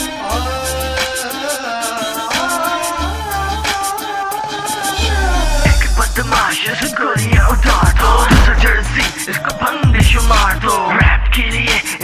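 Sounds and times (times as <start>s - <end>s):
rapping over a beat: 0.0s - 12.0s
deep bass line: 5.0s - 6.5s, 7.2s - 9.2s, 9.8s - 11.8s.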